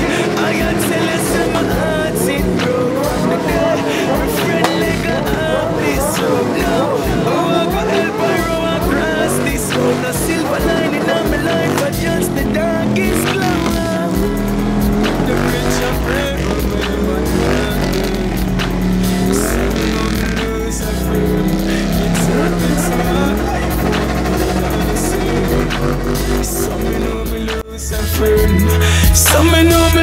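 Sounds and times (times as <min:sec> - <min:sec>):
motorcycle engines revving: 0:00.0 - 0:30.0
music with deep bass: 0:00.0 - 0:30.0.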